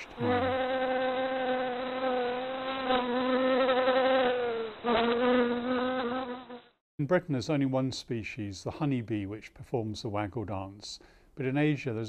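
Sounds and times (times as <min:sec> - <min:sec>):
honeybees buzzing: 0:00.0 - 0:06.7.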